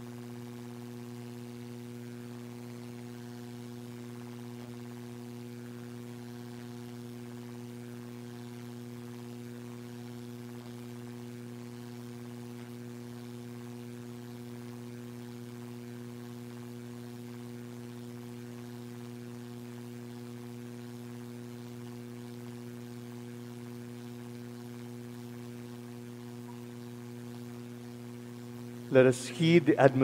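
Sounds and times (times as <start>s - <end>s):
electrical hum: 0.0s - 30.0s
man speaking: 28.9s - 30.0s.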